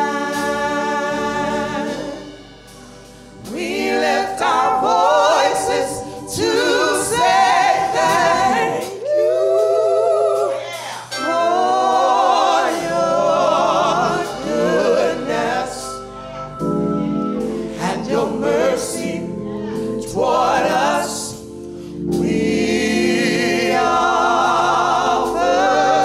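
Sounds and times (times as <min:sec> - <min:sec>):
gospel voices singing in harmony: 0:00.0 - 0:26.0.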